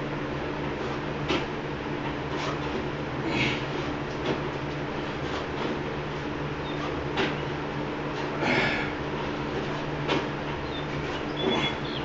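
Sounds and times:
treadmill motor hum: 0.0s - 12.0s.

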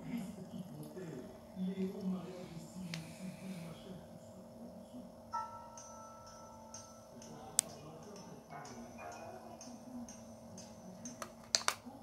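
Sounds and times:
steady hum: 0.0s - 12.0s
soft two-note tone: 5.4s - 7.2s.

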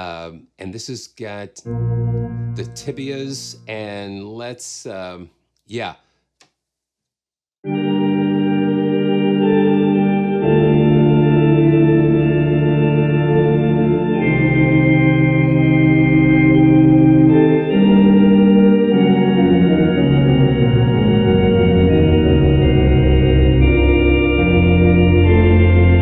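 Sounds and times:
organ playing sustained chords: 1.2s - 5.2s, 7.6s - 26.0s.

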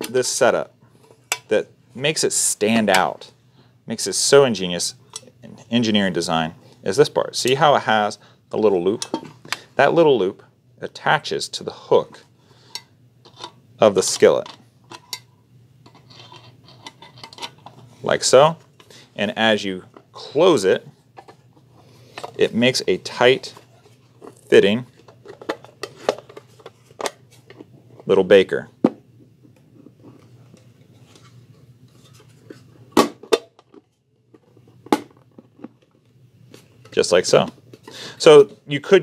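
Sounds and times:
soft handling rustle: 17.6s - 28.4s.

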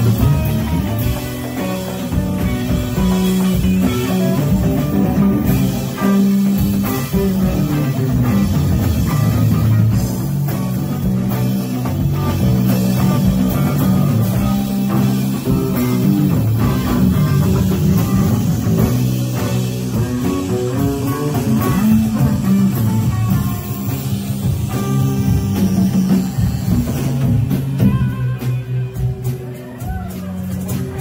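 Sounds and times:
drum kit: 0.0s - 31.0s
electric guitar: 0.0s - 31.0s
heavy bass line: 0.0s - 31.0s.

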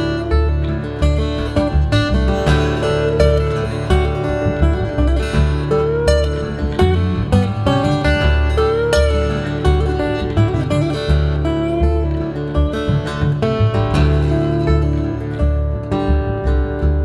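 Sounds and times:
acoustic guitar picking: 0.0s - 17.0s.

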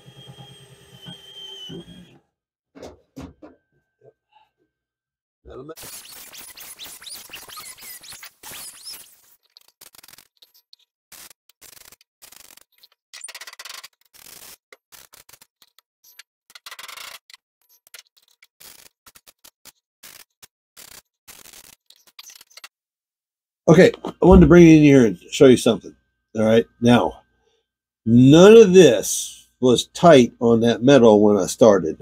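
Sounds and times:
welder crackling tack welds: 5.8s - 13.0s, 13.9s - 15.8s, 18.0s - 22.6s.

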